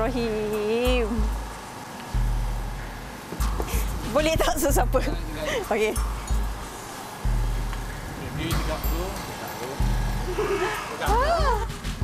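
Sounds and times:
distant voices calling out: 0.0 - 12.0
wind buffeting microphone: 0.9 - 10.4.

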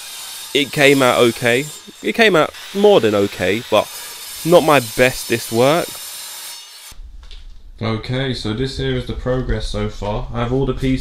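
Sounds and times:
saw blade cutting steel: 0.0 - 7.0.

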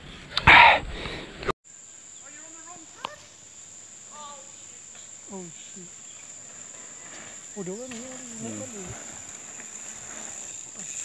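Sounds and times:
high-pitched insect drone: 1.7 - 11.0.

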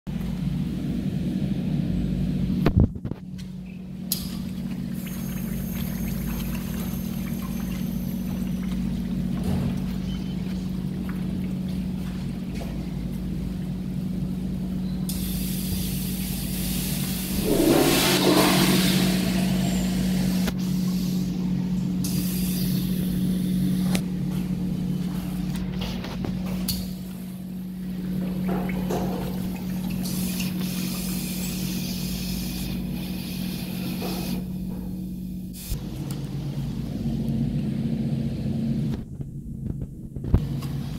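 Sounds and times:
low hum: 0.1 - 33.6, 34.4 - 40.9
toilet flushing water: 4.1 - 14.0, 15.1 - 24.0, 26.9 - 36.8.

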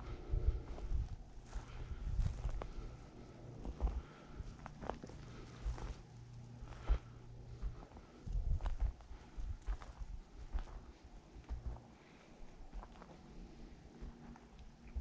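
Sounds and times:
footsteps on stony ground: 0.1 - 15.0.

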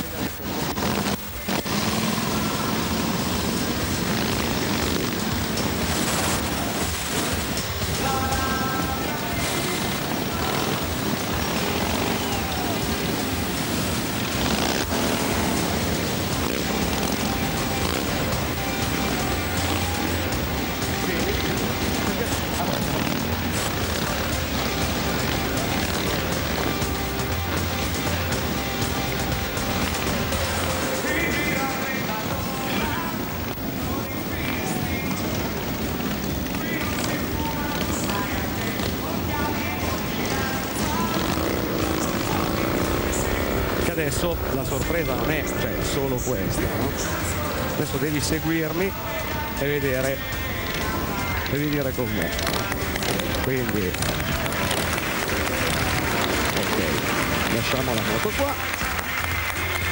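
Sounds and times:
motorcycle engines: 0.0 - 59.9
music: 0.0 - 59.9
voices: 0.0 - 59.9.

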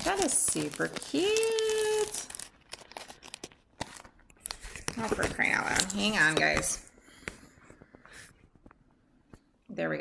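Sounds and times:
paper packaging rustling: 0.0 - 6.8.

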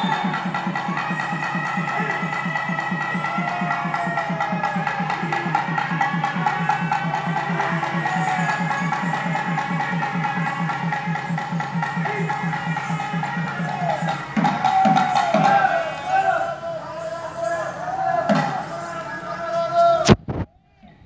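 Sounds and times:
fast drum beat: 0.0 - 16.2
reed pipe melody: 0.0 - 20.4.

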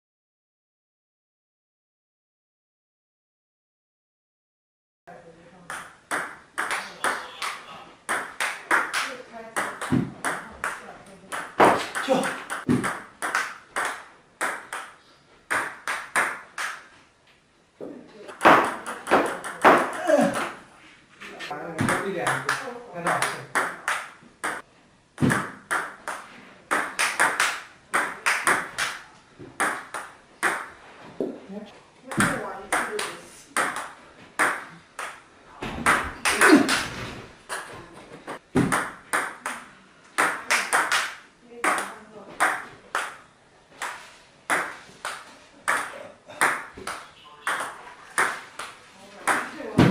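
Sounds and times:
table tennis ball hits: 5.7 - 16.9, 18.3 - 20.6, 21.8 - 24.6, 25.2 - 31.4, 32.1 - 49.9.

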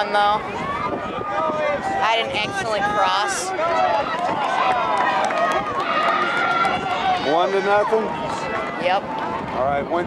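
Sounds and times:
people talking: 2.0 - 4.0, 8.8 - 9.0.

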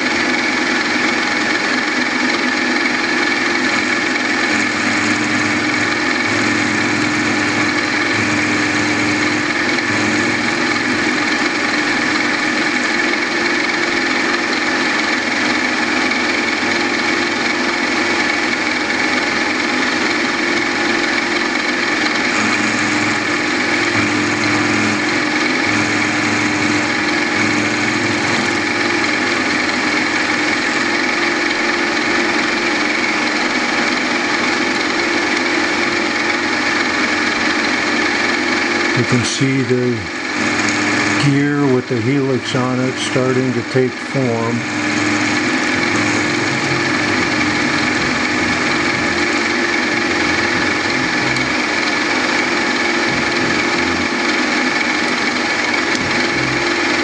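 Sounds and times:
milling machine cutting metal whine: 0.0 - 57.0.

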